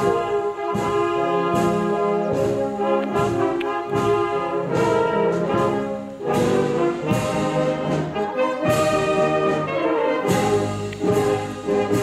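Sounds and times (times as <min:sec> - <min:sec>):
brass band playing slow piece: 0:00.0 - 0:12.0.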